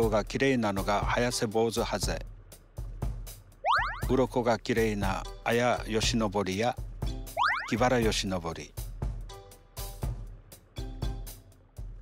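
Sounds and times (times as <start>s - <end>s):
background music: 0.0s - 12.0s
rising cartoon sound effect: 3.7s - 4.1s, 7.4s - 7.8s
person speaking: 7.5s - 8.1s.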